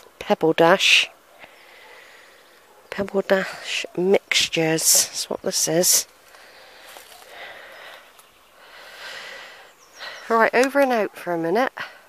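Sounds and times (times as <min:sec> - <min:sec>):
soft breaths: 0:01.1 - 0:04.0, 0:05.9 - 0:10.6.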